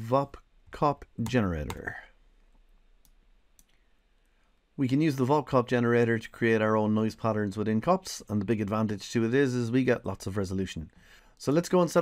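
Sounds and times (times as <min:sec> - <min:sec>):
faint mouse clicks: 0:01.2 - 0:02.0, 0:03.0 - 0:03.8.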